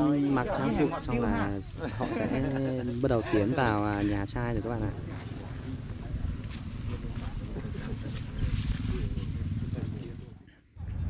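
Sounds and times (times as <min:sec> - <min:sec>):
people talking indistinctly: 0:00.0 - 0:10.5
steady low rumble: 0:04.8 - 0:11.0.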